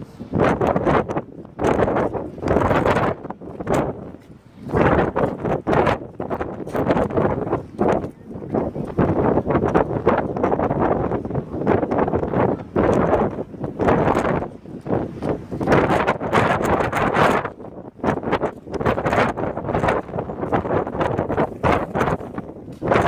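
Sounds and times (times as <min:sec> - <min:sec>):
wind buffeting microphone: 0:00.0 - 0:23.0.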